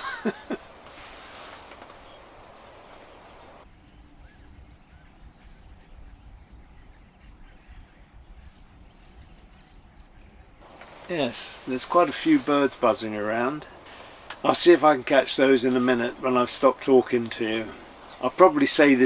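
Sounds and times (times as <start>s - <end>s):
flock of small birds calling: 0.0s - 3.6s, 10.6s - 19.0s
bird chirps: 0.0s - 14.6s, 15.6s - 19.0s.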